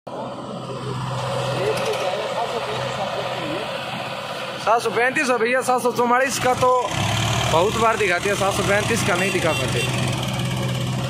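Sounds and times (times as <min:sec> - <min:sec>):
tractor diesel engine running: 0:00.1 - 0:11.0.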